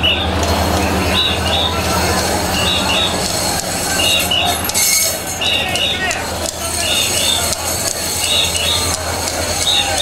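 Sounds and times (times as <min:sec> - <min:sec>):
procession crowd din: 0:00.0 - 0:10.0.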